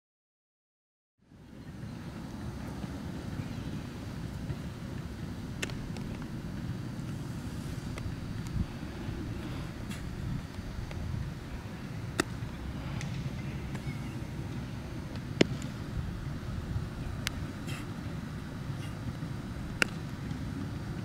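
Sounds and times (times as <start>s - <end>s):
wind rumble on microphone: 1.4s - 21.0s
sharp baseball knocks: 12.1s - 12.4s, 15.1s - 15.8s, 19.7s - 20.0s.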